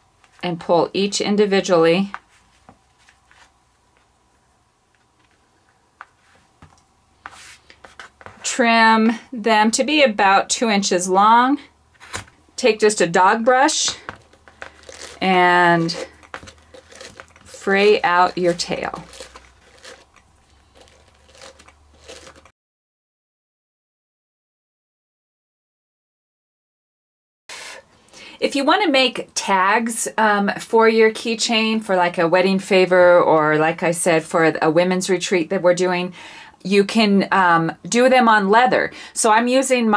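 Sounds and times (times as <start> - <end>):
soft rustles of cords: 2.1 - 4.1, 13.9 - 22.5.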